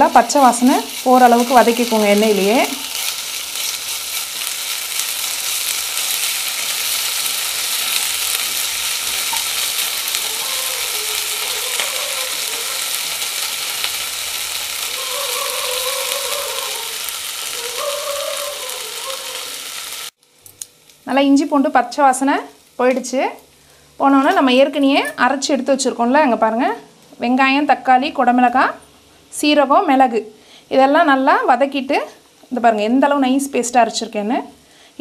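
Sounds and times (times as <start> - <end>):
onions sizzling in oil: 0.0 - 26.6.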